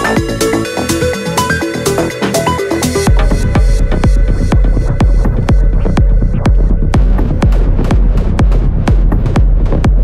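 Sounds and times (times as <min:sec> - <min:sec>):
deep bass: 0:00.0 - 0:10.0
electronic dance music: 0:00.0 - 0:10.0
four-on-the-floor kick drum: 0:03.1 - 0:10.0.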